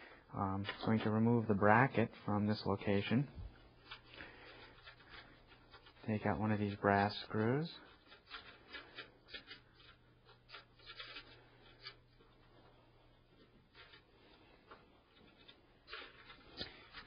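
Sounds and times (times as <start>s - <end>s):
screwdriver scratching and clicking: 7.8s - 12.4s.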